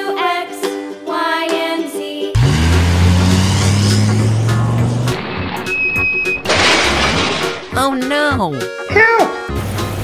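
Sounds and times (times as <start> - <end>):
crash sound effect: 2.7 - 7.8
short high squeal: 5.6 - 6.5.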